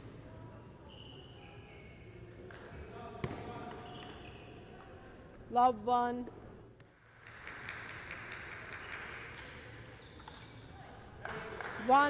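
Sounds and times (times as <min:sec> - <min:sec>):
faint hall ambience: 0:00.0 - 0:12.0.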